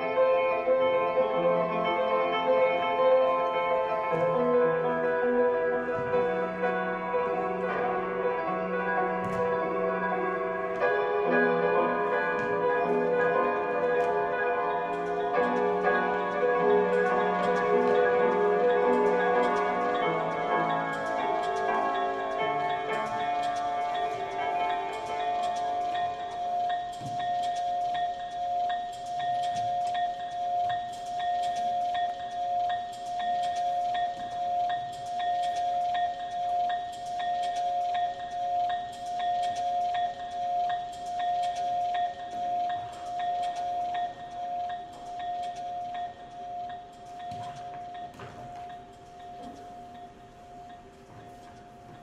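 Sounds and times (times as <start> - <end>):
held bell-like tone: 0.0 - 52.0.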